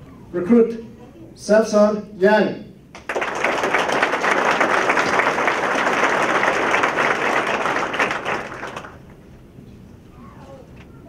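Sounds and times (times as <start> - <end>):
audience applauding: 3.0 - 9.2.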